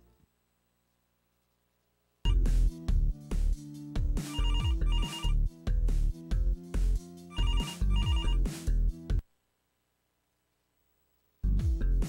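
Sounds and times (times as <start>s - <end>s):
electronic telephone ringing: 4.3s - 5.4s, 7.3s - 8.4s.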